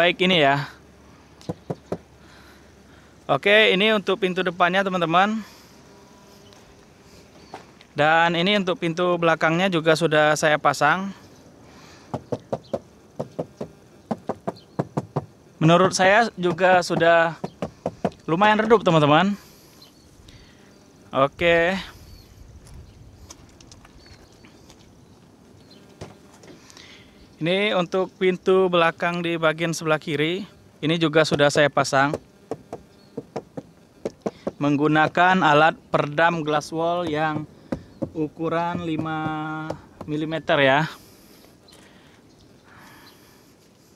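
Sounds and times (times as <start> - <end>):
hand knocking on plastic panel: 1.5 - 2.0, 12.1 - 18.2, 32.1 - 35.2, 37.0 - 40.2.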